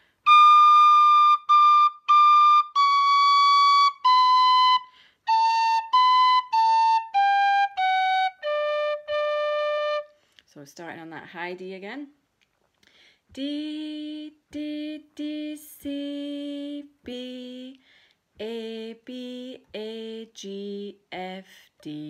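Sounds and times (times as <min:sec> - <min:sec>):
tin whistle playing slowly: 0:00.2 - 0:10.1.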